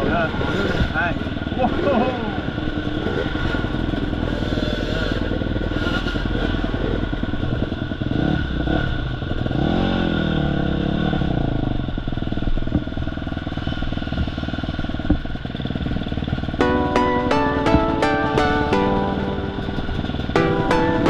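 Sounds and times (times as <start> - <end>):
dirt bike engines running: 0.0 - 11.1, 11.7 - 17.0.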